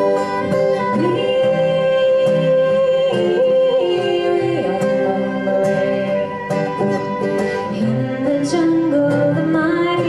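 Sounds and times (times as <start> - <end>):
strummed acoustic guitars: 0.0 - 10.0.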